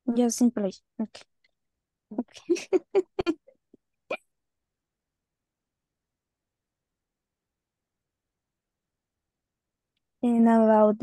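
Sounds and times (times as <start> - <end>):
woman laughing: 2.2 - 3.5.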